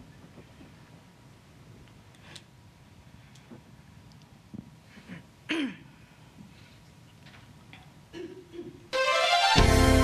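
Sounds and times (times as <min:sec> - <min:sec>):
worship song music: 0:08.9 - 0:10.0.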